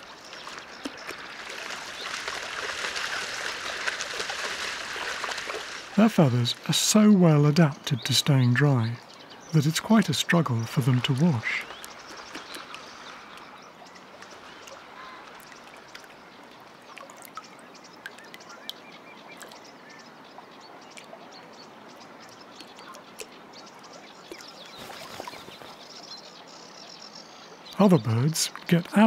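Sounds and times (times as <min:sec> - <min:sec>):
bird splashing in water: 0:00.0 - 0:06.0, 0:24.3 - 0:26.0.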